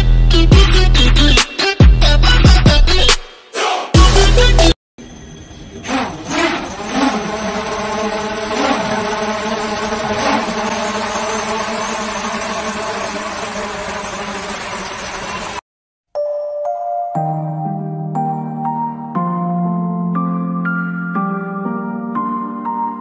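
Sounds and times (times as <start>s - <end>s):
drone propellers buzzing: 5.0s - 15.6s
soft music: 16.2s - 23.0s.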